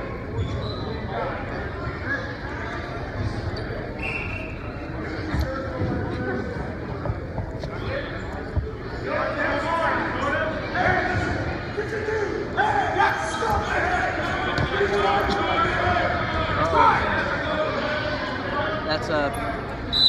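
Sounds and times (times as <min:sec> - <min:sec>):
voices calling out in echoing hall: 0:00.0 - 0:20.0.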